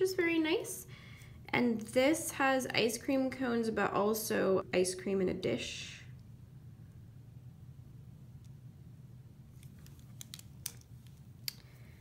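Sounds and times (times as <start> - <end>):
plastic pen clicks and taps: 9.6 - 11.7.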